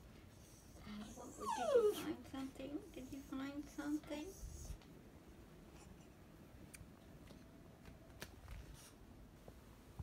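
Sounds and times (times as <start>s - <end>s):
small dog whining: 1.1s - 2.2s.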